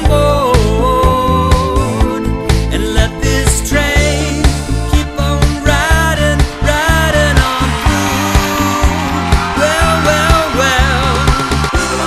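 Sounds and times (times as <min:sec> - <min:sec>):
bass line: 0:00.0 - 0:12.0
steady drum beat: 0:00.0 - 0:12.0.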